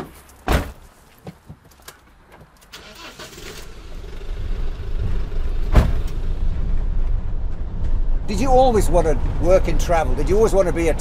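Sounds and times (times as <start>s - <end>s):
thump: 0.4s - 0.8s, 5.7s - 6.2s
engine rumble: 2.1s - 11.0s.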